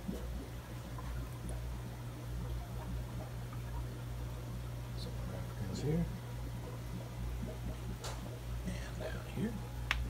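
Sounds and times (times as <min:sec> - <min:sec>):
aquarium equipment humming: 0:00.0 - 0:10.0
faint water noise: 0:00.0 - 0:10.0.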